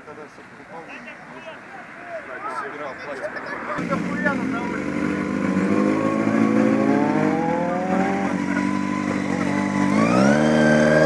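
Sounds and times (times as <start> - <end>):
motorcycle engine revving: 3.8 - 11.0.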